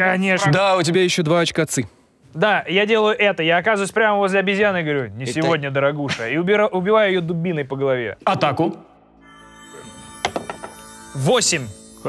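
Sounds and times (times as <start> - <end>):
soft background music: 4.8 - 12.0.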